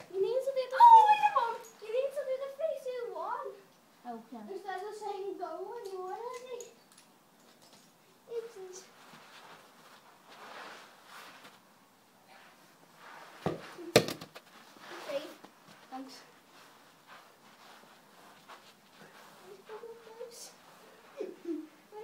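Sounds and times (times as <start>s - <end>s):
football thudding: 13.4s - 14.4s.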